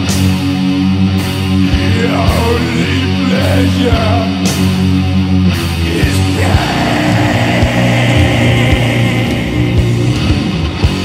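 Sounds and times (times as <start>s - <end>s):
distorted electric guitars and bass: 0.0s - 11.0s.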